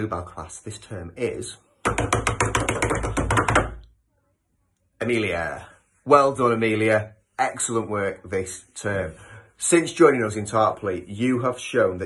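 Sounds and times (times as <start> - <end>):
hands drumming on desk: 1.8 - 3.9.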